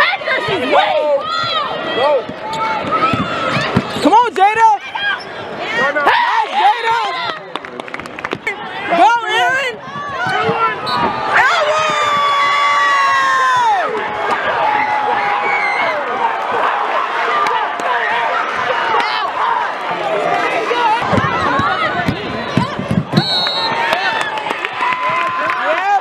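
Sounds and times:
crowd noise and shouting: 0:00.0 - 0:26.0.

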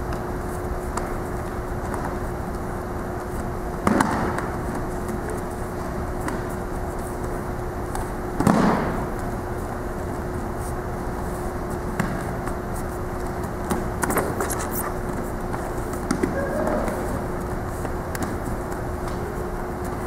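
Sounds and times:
steady hum: 0:00.0 - 0:20.0.

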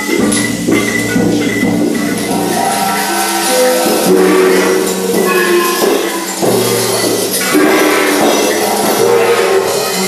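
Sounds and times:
held metallic gong tones: 0:00.0 - 0:10.0.

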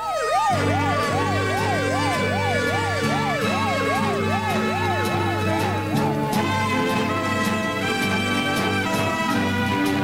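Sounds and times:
ambulance siren wailing: 0:00.0 - 0:10.0
theme music with pulsing bass: 0:00.5 - 0:10.0.

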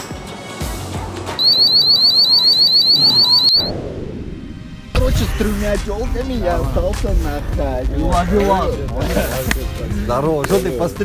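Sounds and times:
security gate alarm beeps: 0:01.4 - 0:03.7.

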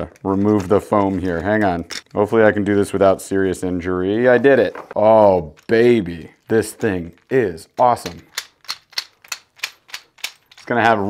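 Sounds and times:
plastic fishing lure clicking: 0:08.0 - 0:10.6.

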